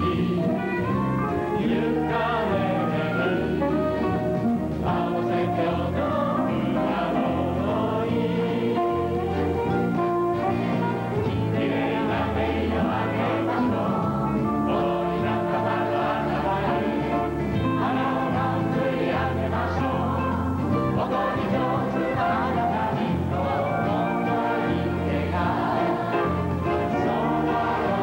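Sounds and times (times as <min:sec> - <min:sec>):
band accompaniment: 0:00.0 - 0:28.0
men and women singing together: 0:00.0 - 0:28.0.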